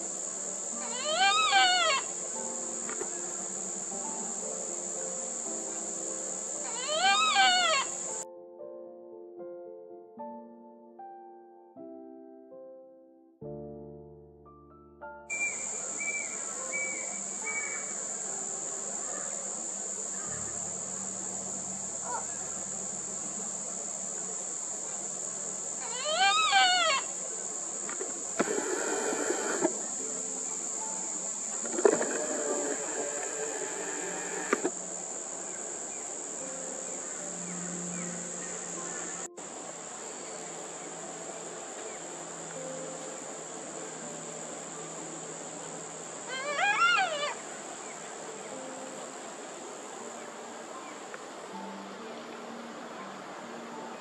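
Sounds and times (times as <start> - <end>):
high-pitched insect drone: 0.0 - 8.2, 15.3 - 50.5
bird chick wailing cry: 0.8 - 2.1, 6.6 - 8.1, 25.8 - 27.1, 46.3 - 47.4
raspy bird calls: 0.8 - 2.1, 6.6 - 8.1, 15.3 - 18.0, 25.8 - 27.2.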